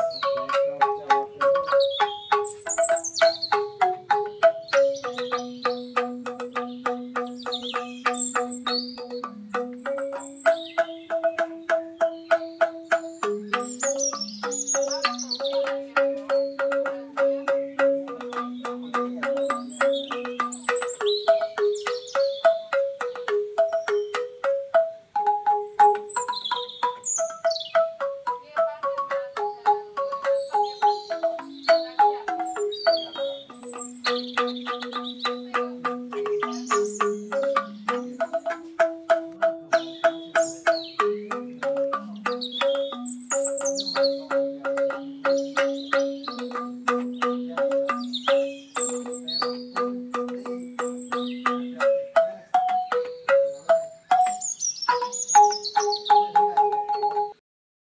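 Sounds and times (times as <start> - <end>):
bamboo xylophone melody: 0.0 - 57.4
birds chirping: 0.0 - 57.4.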